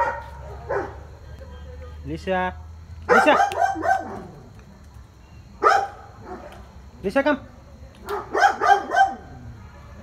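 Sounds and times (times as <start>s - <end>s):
dog barking: 0.0s - 1.0s, 3.1s - 4.4s, 5.6s - 6.6s, 8.0s - 10.0s.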